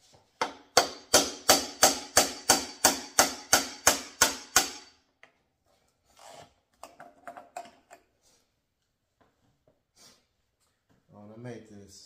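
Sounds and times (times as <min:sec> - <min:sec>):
hand tools clicking and knocking: 0:06.7 - 0:08.1.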